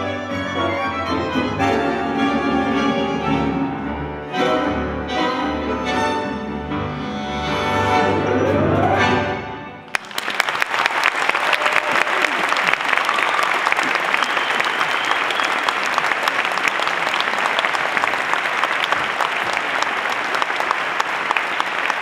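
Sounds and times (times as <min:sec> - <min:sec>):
audience applauding: 0:09.9 - 0:22.0.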